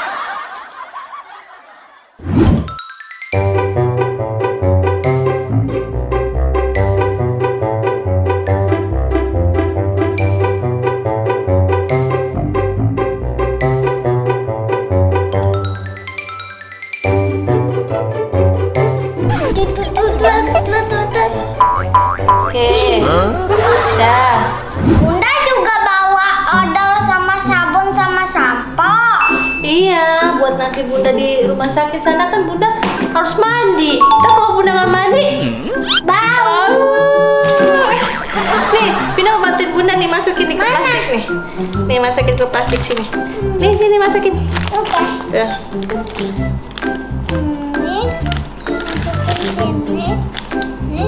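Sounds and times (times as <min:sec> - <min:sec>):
background music: 0:02.3 - 0:51.0
child laughing: 0:19.3 - 0:24.3, 0:47.4 - 0:50.1
woman snickering: 0:20.2 - 0:20.9
cartoon boing sound effects: 0:21.6 - 0:23.1, 0:34.0 - 0:36.1, 0:37.5 - 0:38.5.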